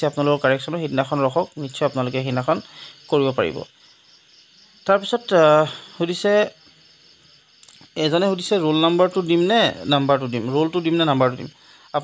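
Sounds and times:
insect chirring: 0:00.0 - 0:12.0
man's voice: 0:08.0 - 0:12.0.

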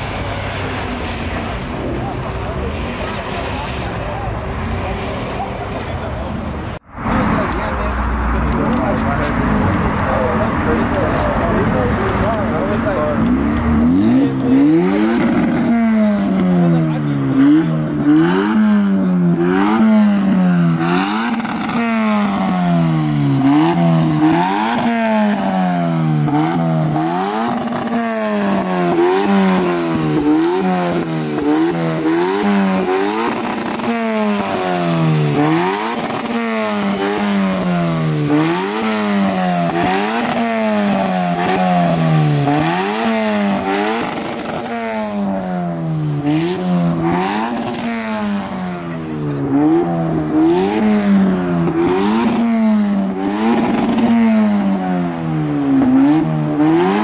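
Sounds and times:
car engine revving: 0:00.0 - 0:57.0.

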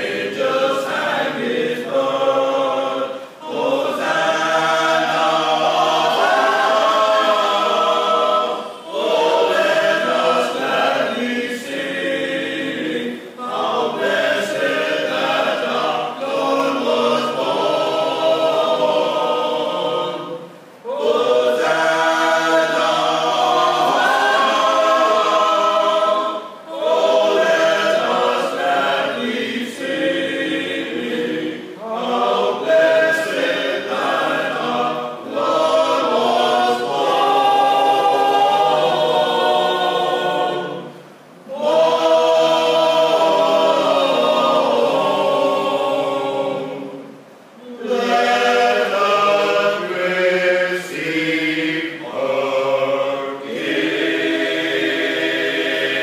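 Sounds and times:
male choir singing a carol: 0:00.0 - 0:56.0.

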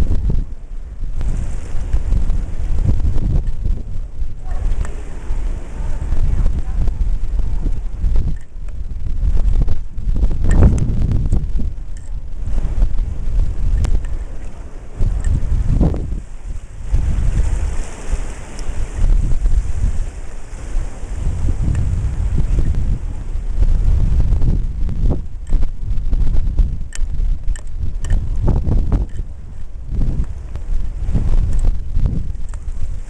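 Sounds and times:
ocean surf surging into rocks: 0:00.0 - 0:33.0
wind buffeting the microphone: 0:00.0 - 0:33.0.

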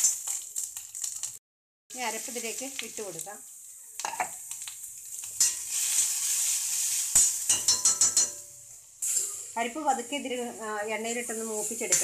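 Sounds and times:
food sizzling in pan: 0:00.0 - 0:12.0
metal spatula knocking on pan: 0:07.5 - 0:08.4
spatula scraping pan: 0:09.0 - 0:09.6.

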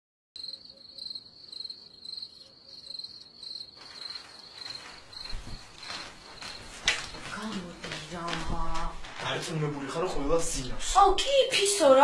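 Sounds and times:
cricket chirping: 0:00.4 - 0:07.5.

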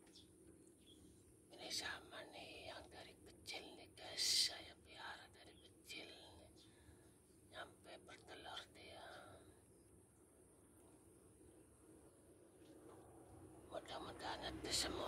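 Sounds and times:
person whispering: 0:01.6 - 0:06.6, 0:07.6 - 0:09.4, 0:13.7 - 0:15.0.

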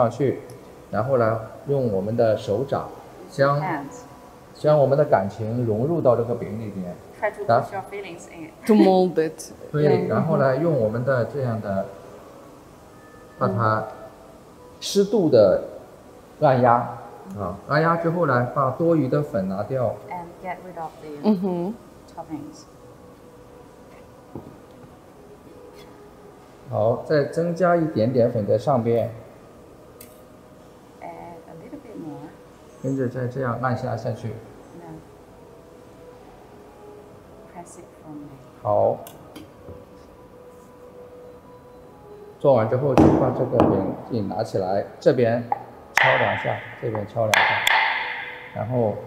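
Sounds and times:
person talking: 0:08.6 - 0:09.1, 0:09.8 - 0:10.6
metal scraper knocking on mold: 0:47.4 - 0:48.3.

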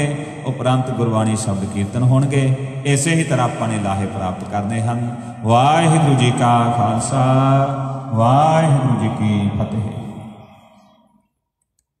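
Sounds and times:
man speaking into microphone: 0:00.0 - 0:10.6.

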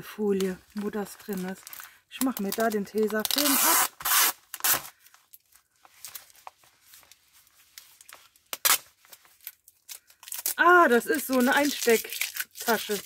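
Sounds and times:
plastic crinkling: 0:00.3 - 0:13.0
adhesive tape ripping: 0:01.6 - 0:05.0, 0:08.5 - 0:10.6, 0:11.2 - 0:13.0.

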